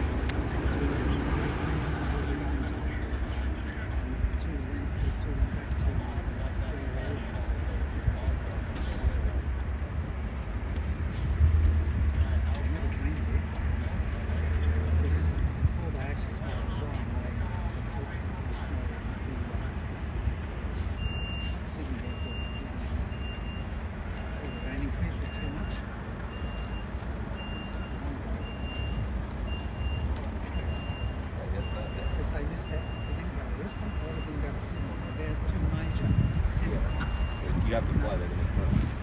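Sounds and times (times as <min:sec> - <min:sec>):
vehicle reversing alarm beeping: 0:11.8 - 0:38.7.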